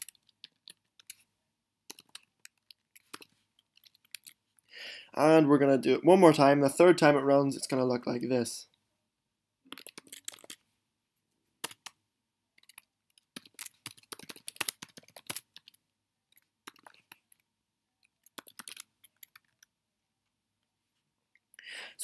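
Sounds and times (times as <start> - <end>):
computer keyboard typing: 0.0 - 1.2, 1.9 - 4.4, 9.7 - 10.6, 11.4 - 12.0, 12.6 - 19.7.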